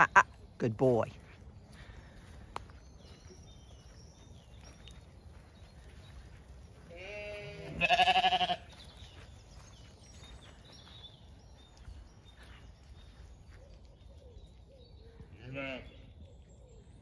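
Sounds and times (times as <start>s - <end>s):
sheep bleating: 6.8s - 8.8s, 15.4s - 16.0s.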